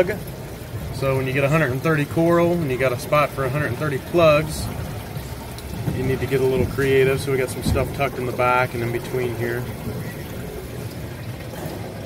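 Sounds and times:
water running and trickling: 0.0 - 12.0.

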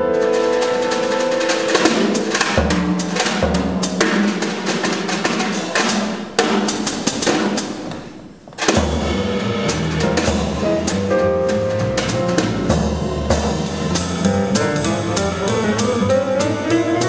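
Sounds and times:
jazz piano: 0.0 - 17.0
snare and cymbal strokes: 0.2 - 7.9, 8.6 - 17.0
upright bass: 8.8 - 17.0.

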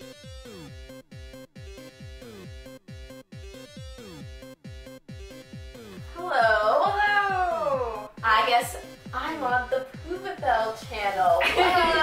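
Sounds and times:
electronic music with kick drum: 0.0 - 12.0.

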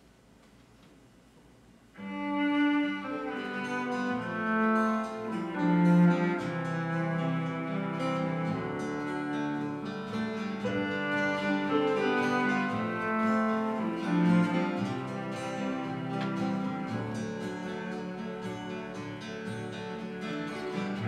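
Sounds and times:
acoustic guitars: 2.0 - 21.0
cello long notes: 2.0 - 21.0.

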